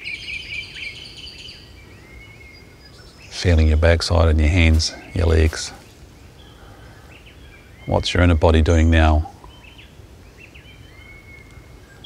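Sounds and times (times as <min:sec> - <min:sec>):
faint distant bird chirps: 0:00.0 - 0:12.0
man's voice: 0:03.3 - 0:05.8, 0:07.9 - 0:09.3.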